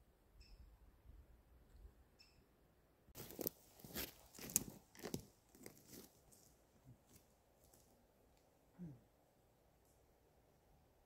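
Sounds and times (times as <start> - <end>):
footsteps crunching on twigs: 3.2 - 7.9.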